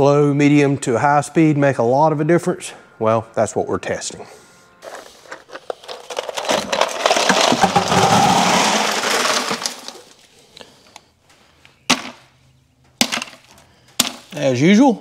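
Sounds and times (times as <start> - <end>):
ice cubes clattering into bucket: 5.3 - 10.2.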